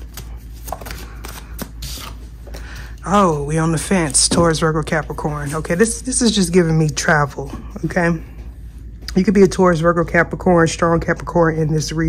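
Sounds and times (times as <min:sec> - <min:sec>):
cards being shuffled: 0:00.0 - 0:03.1.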